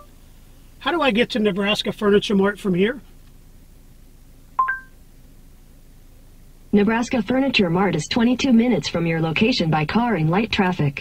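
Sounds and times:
faint in-car room tone: 0.0 - 11.0
two-note electronic chime: 4.6 - 4.9.

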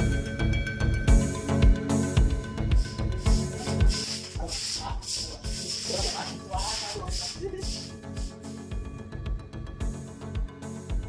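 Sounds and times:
background music with steady beat: 0.0 - 11.0
scrubbing on wet floor: 2.8 - 8.4.

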